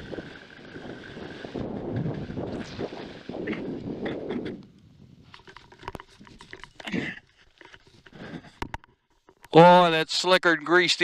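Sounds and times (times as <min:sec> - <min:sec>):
wind rushing over microphone: 0:00.0 - 0:06.6
clicks and rustles: 0:05.2 - 0:09.6.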